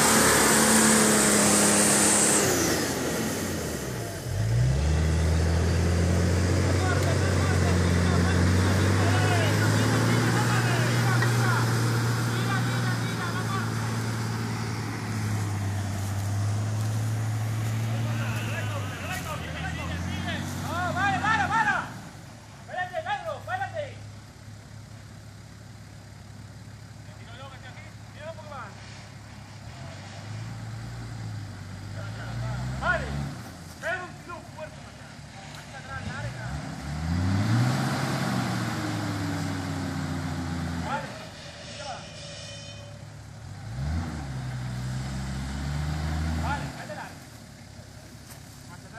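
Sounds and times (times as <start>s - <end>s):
engine revving in mud: 0.0s - 22.2s, 29.6s - 33.7s, 34.7s - 41.4s, 43.4s - 47.2s
voices calling out: 5.4s - 24.2s.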